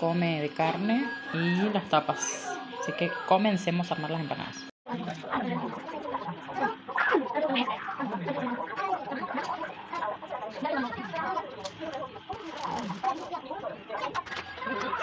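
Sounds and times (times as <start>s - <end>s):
indistinct voices talking: 0.0s - 15.0s.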